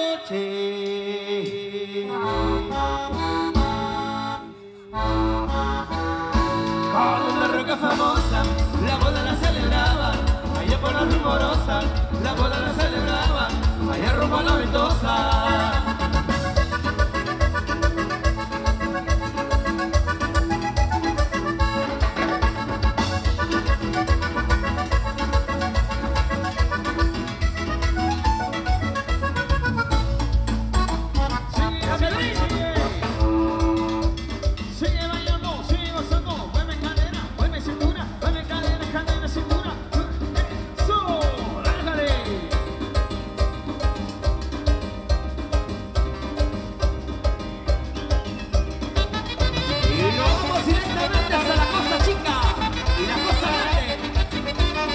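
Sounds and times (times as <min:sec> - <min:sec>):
live band with dance beat: 0:00.0 - 0:54.9.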